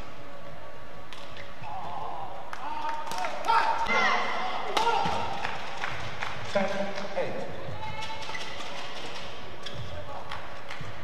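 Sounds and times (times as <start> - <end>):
shoes squeaking on court: 7.4 - 10.1.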